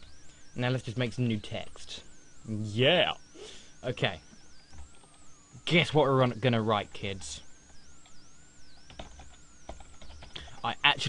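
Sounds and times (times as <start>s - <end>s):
faint wavering high whine: 0.0s - 11.0s
computer keyboard typing: 4.6s - 5.2s, 8.0s - 10.7s.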